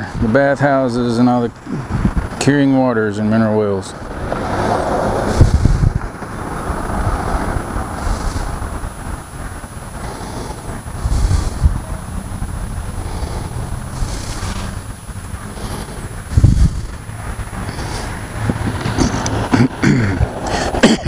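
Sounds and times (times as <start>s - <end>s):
passing road traffic rumble: 0.0s - 21.0s
wind buffeting microphone: 0.0s - 21.0s.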